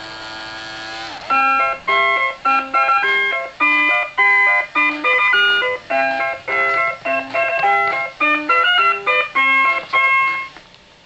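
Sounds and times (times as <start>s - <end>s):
toy electronic tune: 1.3s - 10.6s.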